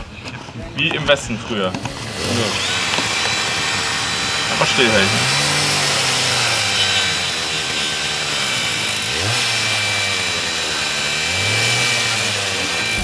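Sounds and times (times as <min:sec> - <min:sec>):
angle grinder motor whining: 0:00.8 - 0:13.0.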